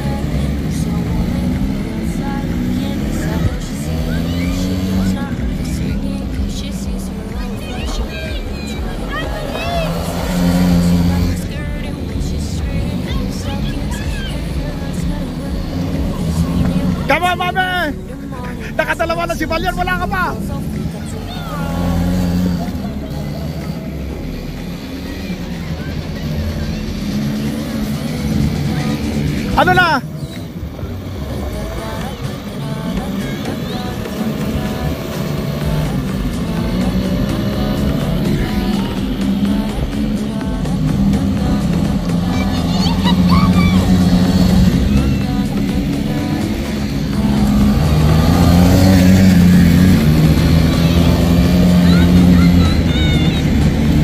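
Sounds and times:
quad bike engine running: 0.0s - 54.0s.

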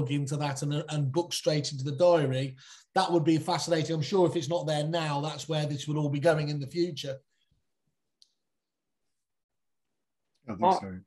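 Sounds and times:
man's voice: 10.5s - 11.0s.

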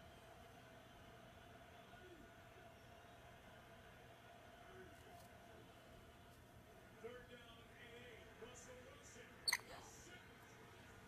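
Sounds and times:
parrot squeak: 9.5s - 9.7s.

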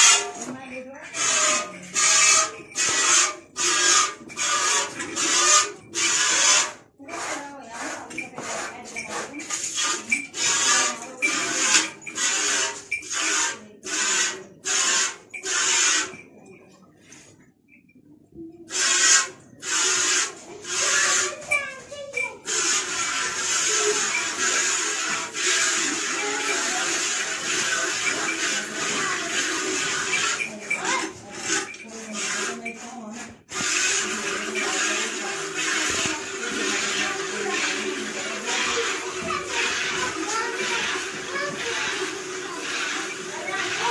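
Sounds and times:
milk squirting into steel bucket: 1.1s - 7.4s, 8.0s - 16.2s, 18.7s - 32.9s, 33.5s - 43.9s.

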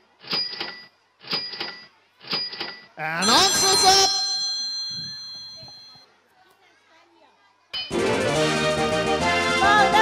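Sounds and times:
chime ringing: 3.2s - 6.1s
children chattering: 3.2s - 7.7s.

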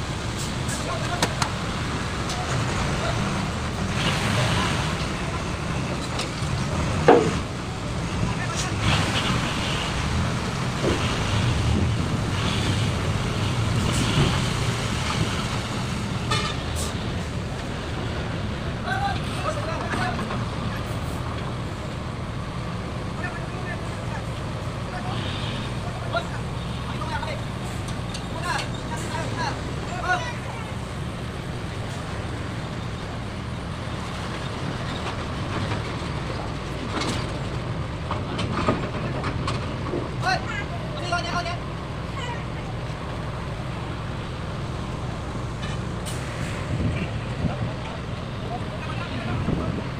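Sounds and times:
sharp knocks: 7.0s - 7.4s.

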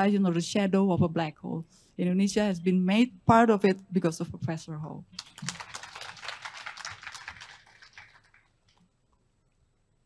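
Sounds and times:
audience applause: 5.2s - 8.6s.

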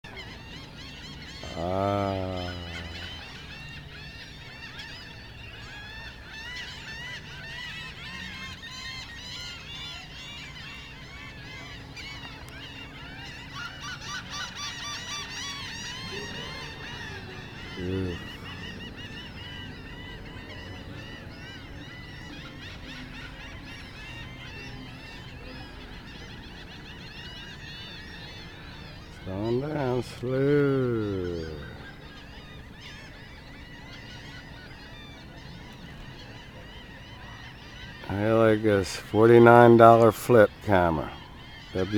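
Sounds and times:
flock of birds calling: 0.0s - 41.9s.

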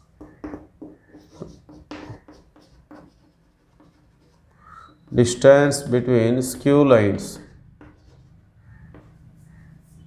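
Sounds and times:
chalk writing on a blackboard: 0.0s - 5.4s, 7.3s - 10.0s.

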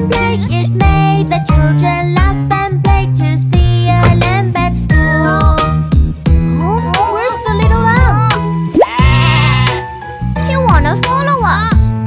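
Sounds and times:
children's song with beat: 0.0s - 6.2s
wavering bleat-like call: 8.8s - 9.8s.

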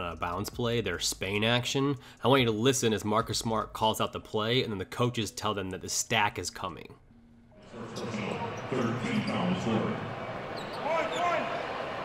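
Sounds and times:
basketball court noise: 7.8s - 12.0s
players shouting play calls: 9.9s - 12.0s.

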